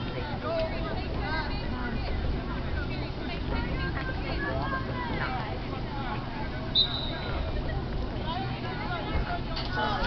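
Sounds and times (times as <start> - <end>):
people calling and shouting: 0.0 - 10.0
steady low rumble: 0.0 - 10.0.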